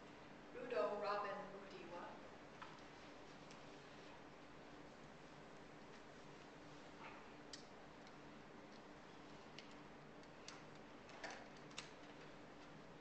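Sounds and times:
faint steady hum: 0.0s - 13.0s
faint small clicks and taps: 7.0s - 12.7s.

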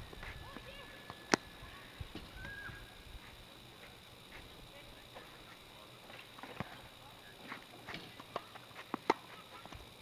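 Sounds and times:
tennis ball strikes and bounces: 7.5s - 9.7s.

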